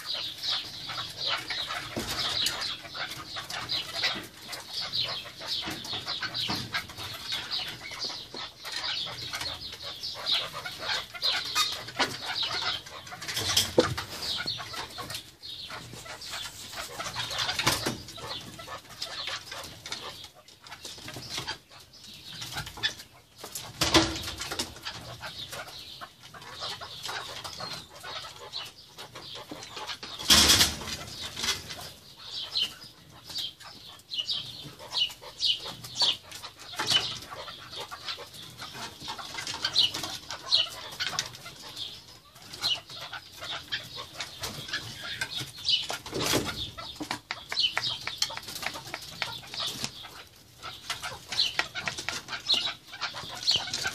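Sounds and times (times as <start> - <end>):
partridges calling: 0.0 - 53.9.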